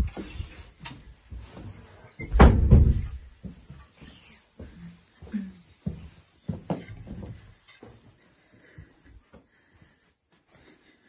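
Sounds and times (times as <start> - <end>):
footsteps on carpeted stairs: 0.0 - 11.0.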